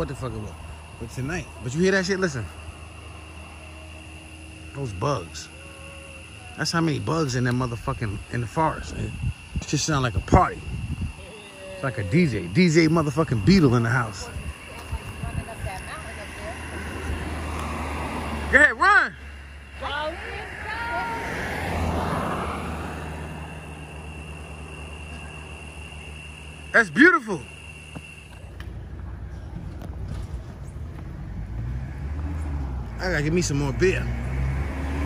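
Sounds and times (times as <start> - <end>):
insects droning: 0.0 - 35.0
vehicle engine and tyre noise: 0.0 - 35.0.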